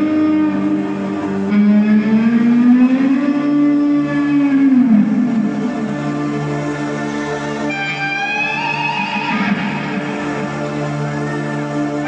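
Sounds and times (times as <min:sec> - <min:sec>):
electric guitar sliding note: 0:00.0 - 0:06.8, 0:07.6 - 0:12.0
live rock band: 0:00.0 - 0:12.0.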